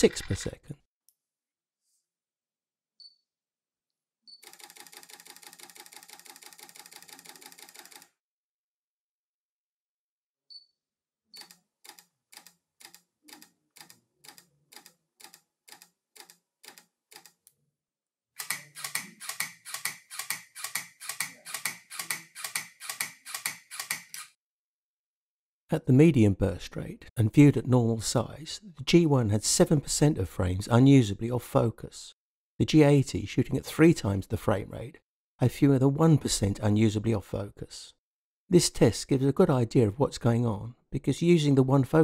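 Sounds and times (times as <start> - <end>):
camera shutter bursts: 18.4 - 24.3.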